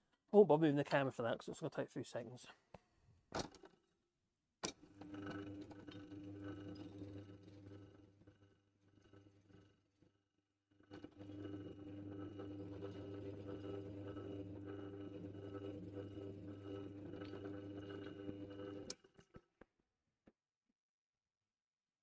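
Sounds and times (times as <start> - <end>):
drill press motor running: 4.9 - 10.0, 10.7 - 19.1.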